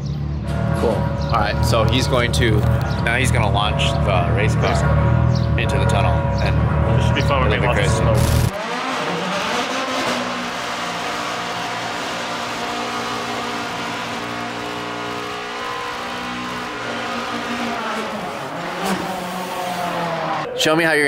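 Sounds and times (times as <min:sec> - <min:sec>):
spinning tyres: 0:00.4 - 0:20.5
race car engine at high revs: 0:00.4 - 0:20.6.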